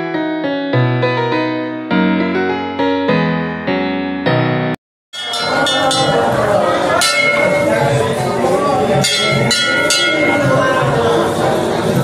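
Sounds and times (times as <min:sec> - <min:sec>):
temple bell ringing: 0:05.2 - 0:11.6
hubbub of voices: 0:05.2 - 0:12.0.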